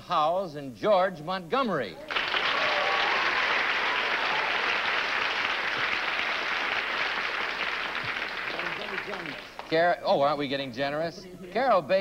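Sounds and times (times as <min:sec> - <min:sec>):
studio audience applauding: 0:02.1 - 0:09.8.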